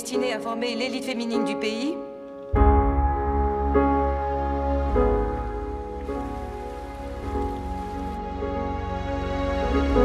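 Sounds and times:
soft film score: 0.0s - 10.0s
rain pattering on water: 5.0s - 8.2s.

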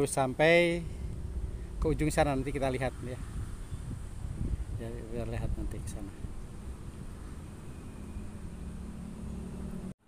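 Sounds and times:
low rumble: 0.0s - 8.8s
faint high steady hiss: 0.0s - 9.1s.

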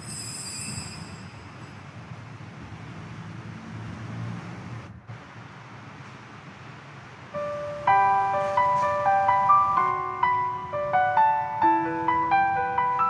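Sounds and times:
keyboard playing sustained notes: 7.4s - 13.0s.

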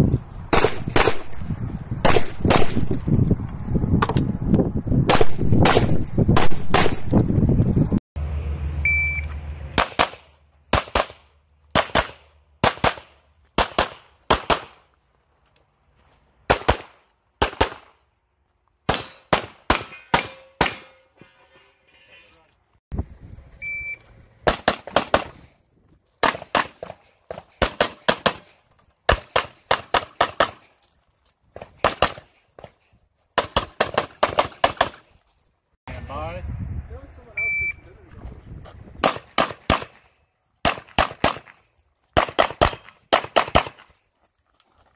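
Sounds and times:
pistol shots: 0.5s - 1.4s, 2.0s - 2.9s, 5.1s - 7.1s, 9.8s - 14.8s, 16.5s - 18.0s, 18.9s - 21.0s, 24.4s - 25.4s, 26.2s - 27.0s, 29.1s - 30.7s, 33.4s - 35.0s, 39.0s - 41.6s, 42.2s - 43.9s
shot timer beep: 8.8s - 9.4s, 37.4s - 37.8s.

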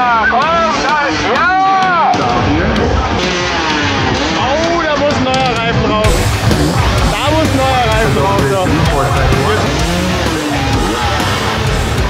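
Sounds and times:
music: 0.0s - 12.0s
voices: 0.0s - 12.0s
dirt bikes revving: 2.0s - 12.0s.

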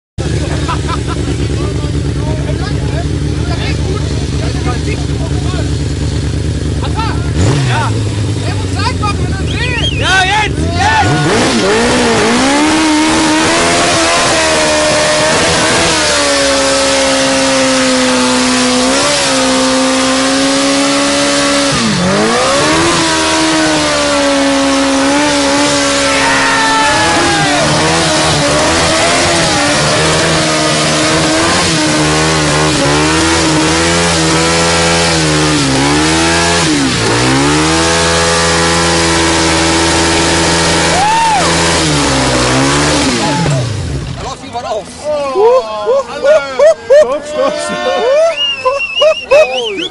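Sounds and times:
motorcycle engine at high revs: 0.2s - 44.4s.

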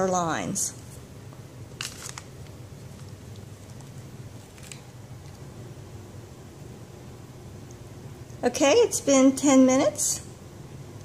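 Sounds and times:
steady low hum: 0.0s - 11.0s
handling noises on a countertop: 1.8s - 2.3s.

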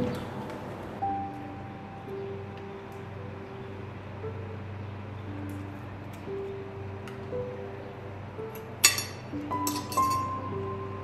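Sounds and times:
soft background music: 0.0s - 11.0s
cutlery clinking on tableware: 8.8s - 10.5s.

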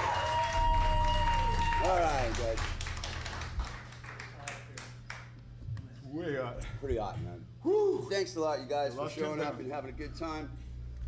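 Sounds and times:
audience clapping: 0.0s - 5.5s
low amplifier hum: 0.0s - 11.0s.

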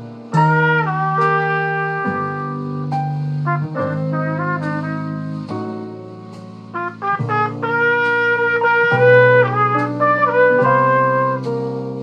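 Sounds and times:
brass horn playing jazz ballad: 0.0s - 12.0s.

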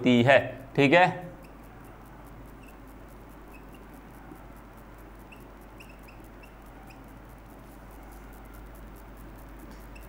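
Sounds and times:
marker squeaking on whiteboard: 1.3s - 8.8s, 9.7s - 10.0s.

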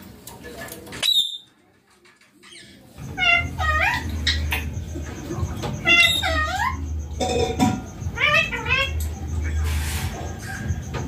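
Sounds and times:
parakeet squawking and chattering: 2.4s - 11.0s.

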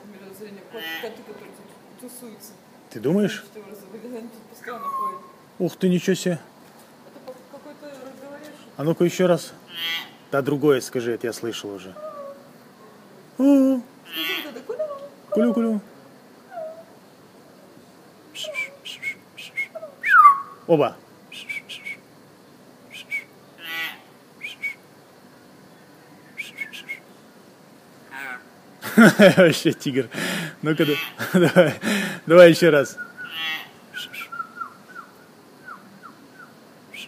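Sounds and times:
myna bird whistling and clicking: 18.4s - 20.6s, 21.3s - 22.0s, 22.9s - 23.3s, 24.4s - 24.8s, 26.2s - 27.0s, 34.0s - 37.0s.

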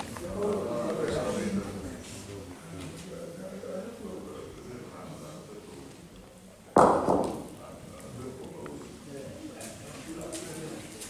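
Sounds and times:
bocce ball knocking: 6.7s - 7.6s.

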